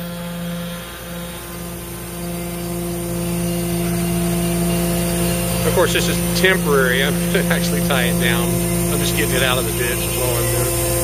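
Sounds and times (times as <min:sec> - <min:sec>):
tow truck engine running winch: 0:00.0 - 0:11.0.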